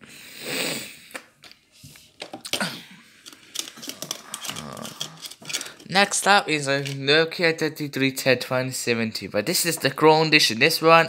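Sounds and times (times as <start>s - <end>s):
plastic phones clicking and knocking: 2.2s - 2.6s.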